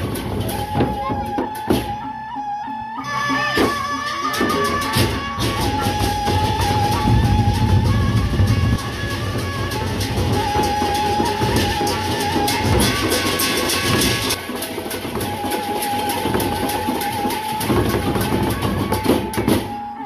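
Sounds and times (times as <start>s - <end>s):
long held high note: 3.0s - 14.4s.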